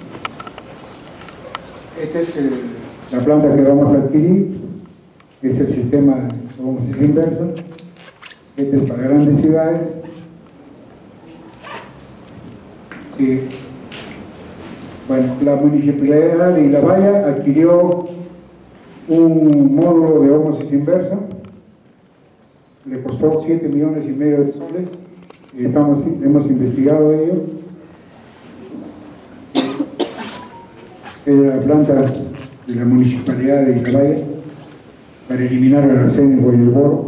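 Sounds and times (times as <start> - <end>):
man coughing into microphone: 29.5 - 30.7.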